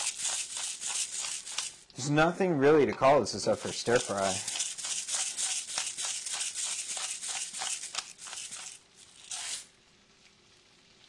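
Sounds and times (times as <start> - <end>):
pepper mill grinding: 0.0 - 1.9, 3.4 - 9.7.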